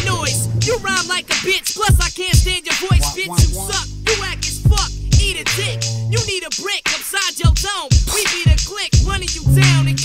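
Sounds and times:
held low bass note: 0.0s - 0.9s, 3.0s - 6.2s
drum hits: 0.0s - 10.0s
rapping over a beat: 0.0s - 10.0s.

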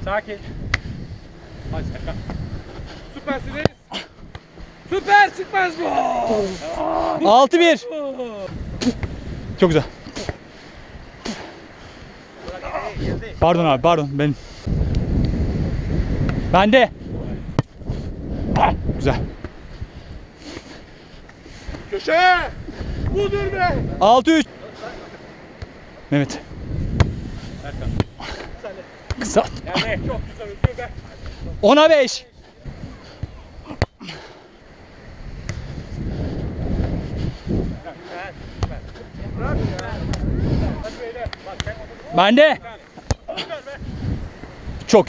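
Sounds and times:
wind rumble on microphone: 0.0s - 4.9s, 8.3s - 10.0s, 11.8s - 20.4s, 21.6s - 24.2s, 26.2s - 28.6s, 29.2s - 33.8s, 34.8s - 42.7s, 43.7s - 45.0s
hand smacking volleyball: 43.0s - 43.2s.

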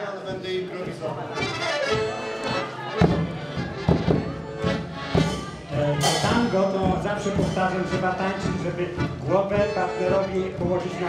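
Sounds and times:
accordion playing chords: 0.7s - 11.0s
bass drum beats: 3.0s - 11.0s.

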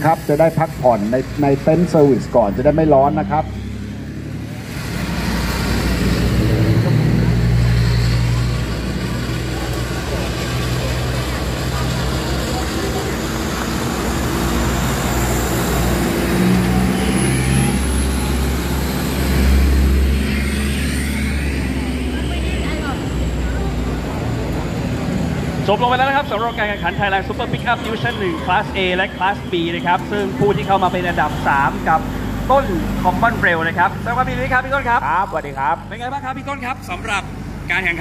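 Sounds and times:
truck engines rumbling past: 0.0s - 38.0s.

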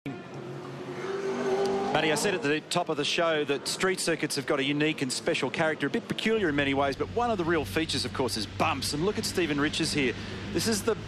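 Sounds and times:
racing car engine accelerating: 0.5s - 2.6s.

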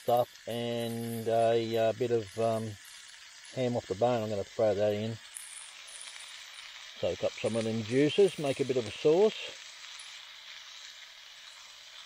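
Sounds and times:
meat sizzling in a frying pan: 0.0s - 12.0s.

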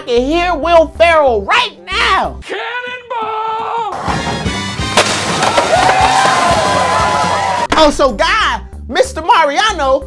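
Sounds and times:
skateboard hitting concrete: 4.0s - 7.9s.

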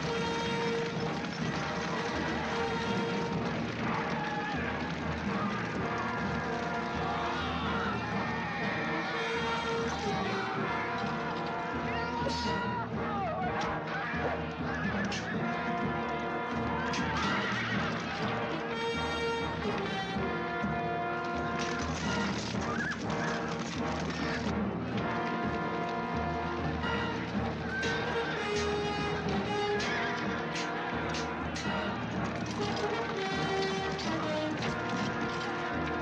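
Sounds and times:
galloping hooves: 0.0s - 36.0s
orchestral music: 0.0s - 36.0s
horses whinnying: 16.7s - 18.4s, 22.1s - 23.6s, 27.6s - 31.8s
clashes and knocks: 27.2s - 36.0s.

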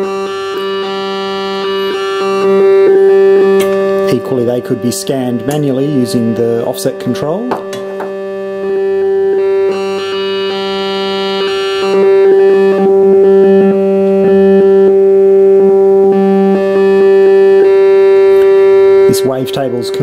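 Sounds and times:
synthesizer tone shifting timbre: 0.0s - 20.0s.

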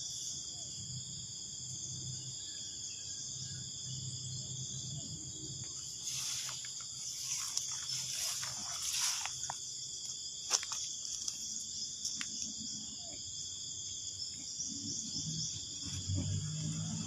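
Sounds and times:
insects chirping: 0.0s - 17.0s.

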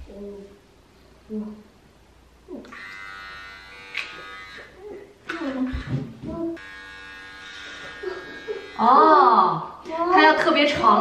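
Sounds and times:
electric hair clipper buzzing: 2.6s - 9.1s.

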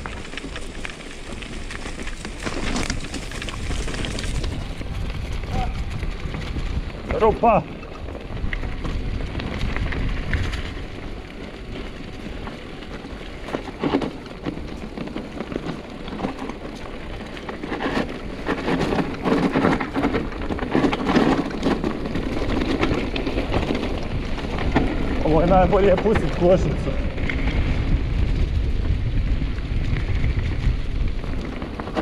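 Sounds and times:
bike rattling and clattering: 0.0s - 32.0s
tyres crunching over stones: 0.0s - 32.0s
wind on microphone: 1.3s - 32.0s.

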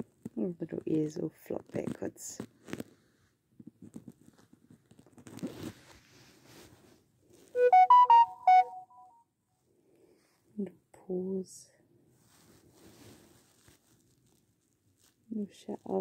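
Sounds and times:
soft rustles of fingers: 1.6s - 7.6s, 12.1s - 16.0s
short electronic jingle: 7.6s - 9.0s.

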